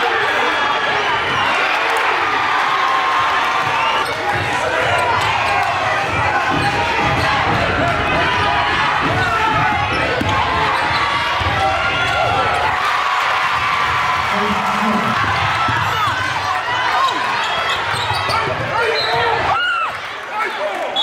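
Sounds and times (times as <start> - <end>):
hubbub of voices: 0.0 - 21.0.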